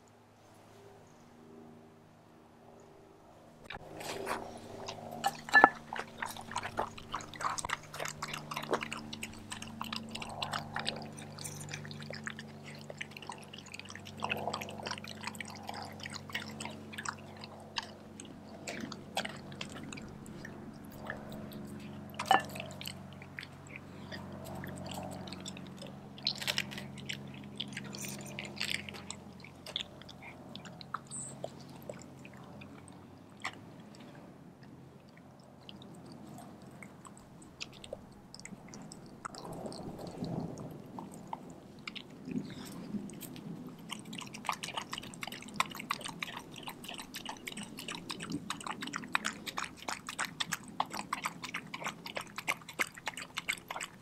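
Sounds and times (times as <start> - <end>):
dog chewing and lapping: 3.7 - 54.0.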